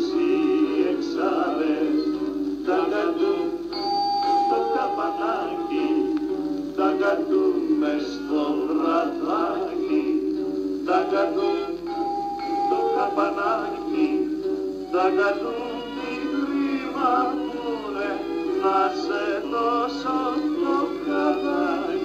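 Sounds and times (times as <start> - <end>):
men singing: 0.0 - 11.8, 12.5 - 22.0
guitar accompaniment: 0.0 - 22.0.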